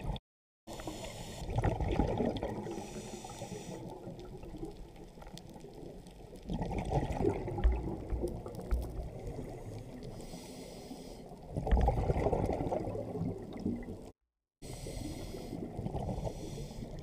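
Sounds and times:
water bubbling and splashing: 1.4 - 10.2, 11.4 - 14.2, 15.4 - 17.0.

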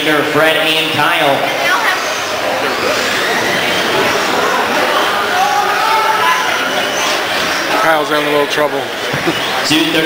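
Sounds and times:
voices echoing in a hall: 0.0 - 10.0.

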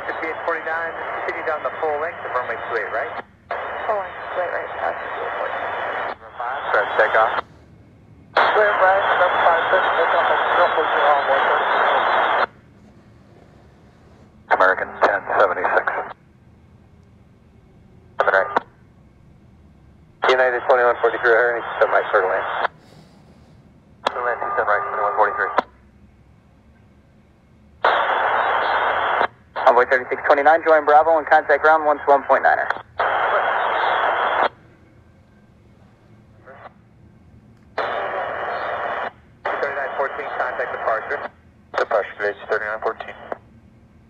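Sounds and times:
radio voice transmission: 0.0 - 7.6, 8.4 - 16.2, 18.1 - 18.7, 20.2 - 22.8, 24.0 - 25.8, 27.8 - 34.6, 36.3 - 36.8, 37.8 - 43.4
low radio hiss: 0.0 - 44.0.

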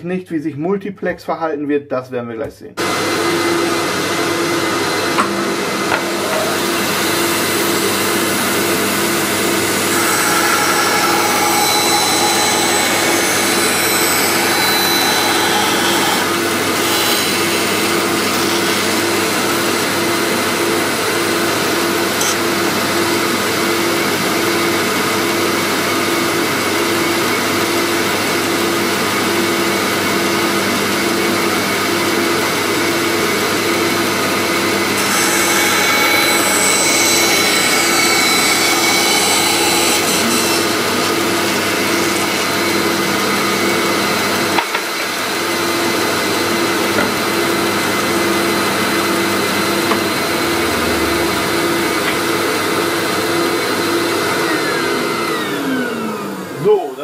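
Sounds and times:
band saw cutting plywood: 2.8 - 23.8, 32.9 - 56.5.

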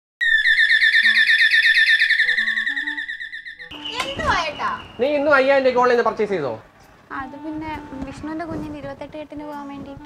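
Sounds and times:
bird chirping trill: 0.2 - 6.1
soft low music notes: 4.9 - 10.0.

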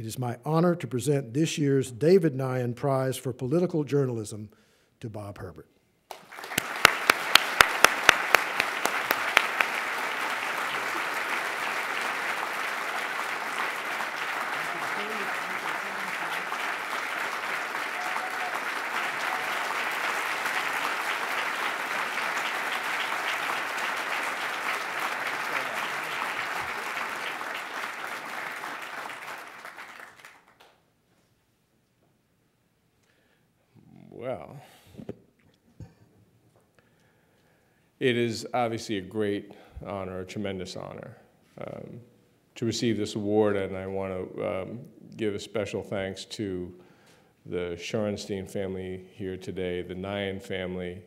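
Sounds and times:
audience applauding: 6.1 - 30.8
loud sharp claps close by: 6.1 - 30.8.

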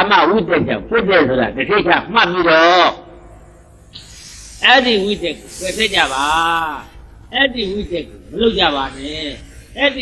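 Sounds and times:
man preaching: 4.6 - 10.0.

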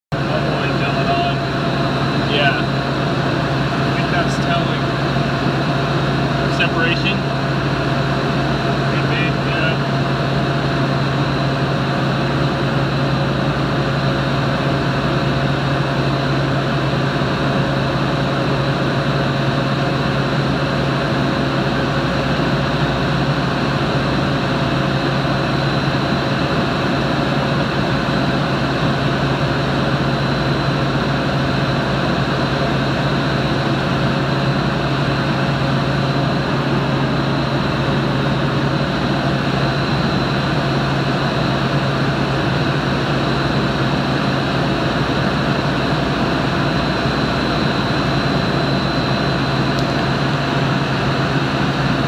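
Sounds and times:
constant low hum: 0.1 - 52.0.

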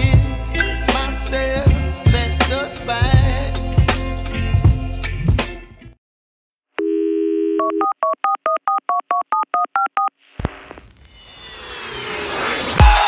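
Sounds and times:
telephone dial tone: 6.8 - 10.1
rising whoosh: 10.9 - 13.0
electronic beat with kick drums: 12.8 - 13.0.

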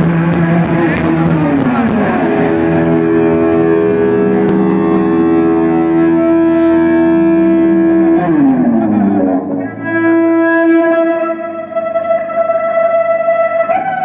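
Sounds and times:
bowed electric guitar droning: 0.0 - 14.0.

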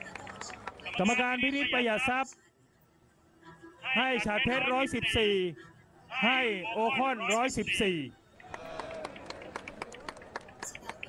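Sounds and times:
sharp claps and clicks: 0.0 - 1.2, 8.4 - 11.0
murmur of crowd voices: 0.0 - 2.4, 3.5 - 11.0.

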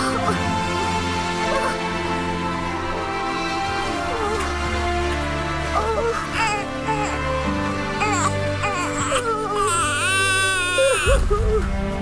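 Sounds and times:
soft background music: 0.0 - 12.0
newborn baby crying: 3.8 - 5.0, 5.6 - 11.7.

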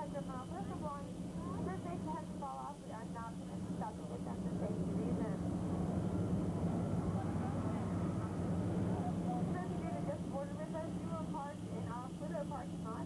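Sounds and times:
passengers chattering: 0.0 - 13.0
tram engine humming: 0.0 - 13.0.

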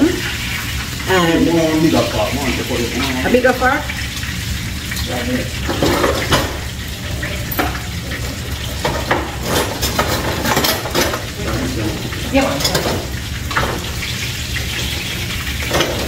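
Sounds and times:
fish sizzling in a frying pan: 0.0 - 16.0.

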